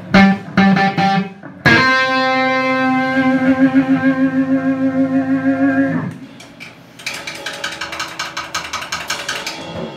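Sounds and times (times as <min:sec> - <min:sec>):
sustained electric guitar note: 0:00.2 - 0:06.2
fast regular clicks: 0:07.0 - 0:09.6.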